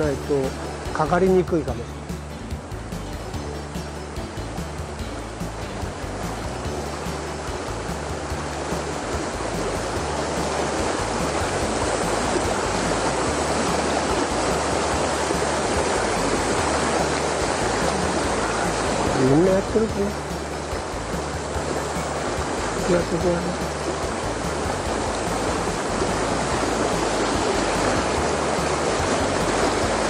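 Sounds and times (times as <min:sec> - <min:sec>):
river water rushing over stones: 0:00.0 - 0:30.0.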